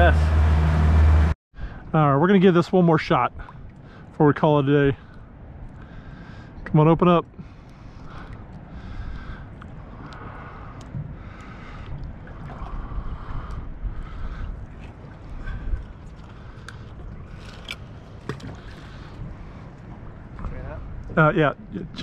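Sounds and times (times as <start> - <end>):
water slapping boat hull: 2.5 - 22.0
wind buffeting microphone: 7.4 - 22.0.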